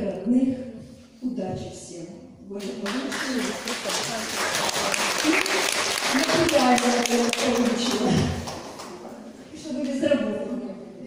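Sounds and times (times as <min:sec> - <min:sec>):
audience applauding: 0:02.7 - 0:09.1.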